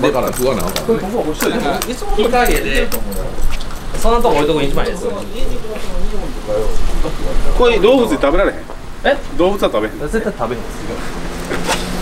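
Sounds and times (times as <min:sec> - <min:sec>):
man talking: 0:00.0 - 0:11.2.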